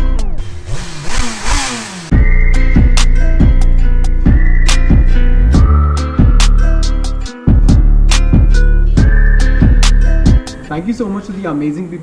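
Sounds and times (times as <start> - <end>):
motorcycle engine revving: 0.0 - 3.6
beat music: 0.0 - 11.2.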